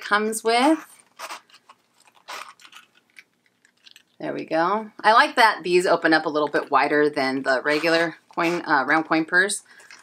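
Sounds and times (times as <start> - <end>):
coin purse zipper rasping: 0.6 - 2.9, 7.6 - 9.0.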